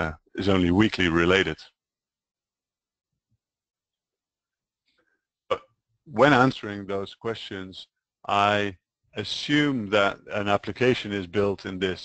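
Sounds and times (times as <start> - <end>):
short spoken syllable: 8.3 - 12.0.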